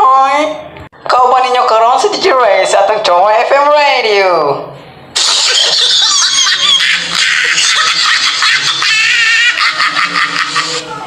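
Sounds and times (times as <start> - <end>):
high-pitched laughter of several voices: 5.2 - 11.0.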